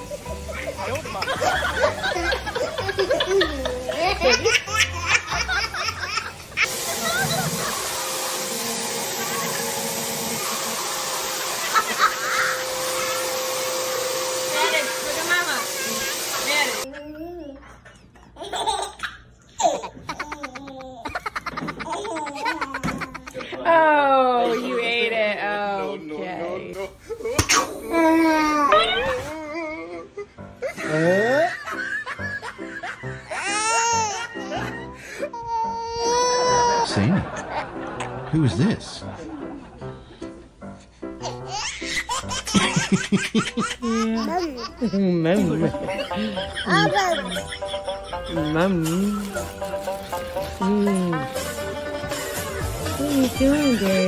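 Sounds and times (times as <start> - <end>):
baby laughing: 0.2 - 7.8, 11.6 - 13.2, 16.8 - 23.6, 31.6 - 38.2, 41.2 - 54.0
baby giggling: 18.3 - 23.5, 41.2 - 45.1, 45.7 - 49.3.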